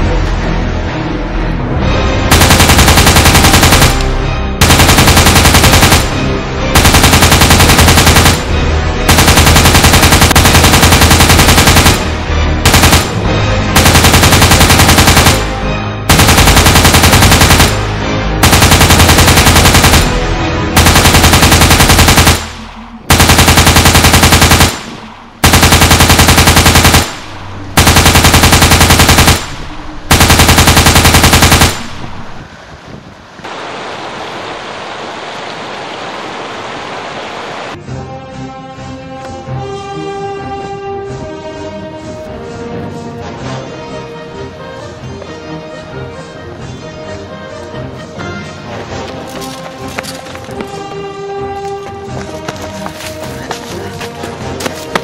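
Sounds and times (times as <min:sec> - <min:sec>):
automatic rifle fire: 0:02.3 - 0:06.2, 0:06.8 - 0:08.5, 0:09.1 - 0:12.1, 0:12.7 - 0:13.2, 0:13.8 - 0:15.5, 0:16.1 - 0:17.8, 0:18.4 - 0:20.2, 0:20.8 - 0:32.1.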